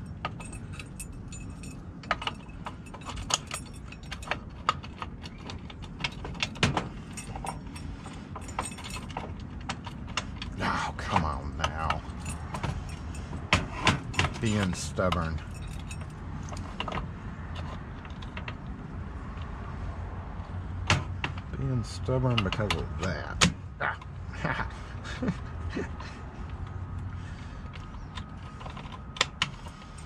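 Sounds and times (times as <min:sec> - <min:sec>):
keys jangling on a ring: 0:00.0 - 0:10.6, 0:11.3 - 0:18.3.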